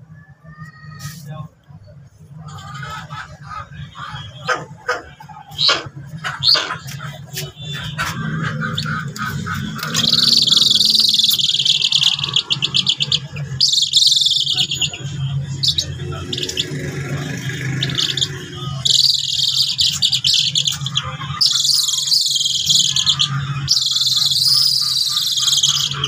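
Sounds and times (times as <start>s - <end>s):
eagle high rapid chattering: 2.2s - 26.0s.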